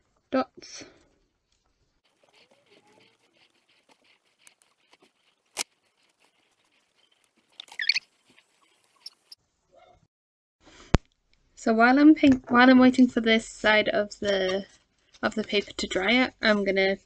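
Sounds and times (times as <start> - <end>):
short high squeak: 7.6 - 8.1.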